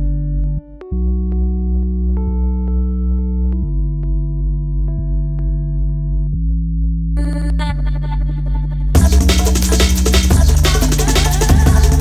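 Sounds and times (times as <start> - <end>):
deep synth bass chord: 0.0 - 12.0.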